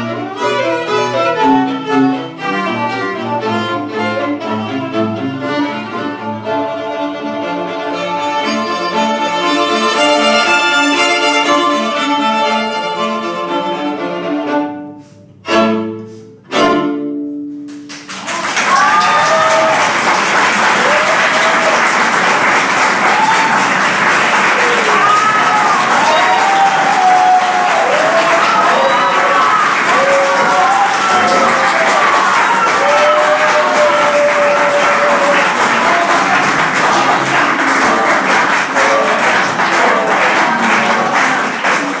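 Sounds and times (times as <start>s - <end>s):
string quartet playing: 0.0s - 17.7s, 27.6s - 42.0s
audience clapping: 17.7s - 42.0s.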